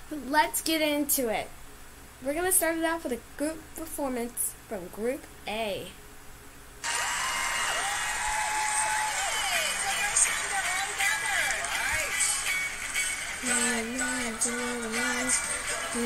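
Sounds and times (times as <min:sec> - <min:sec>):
pop song playing: 0:09.1 - 0:16.0
person singing: 0:13.3 - 0:16.0.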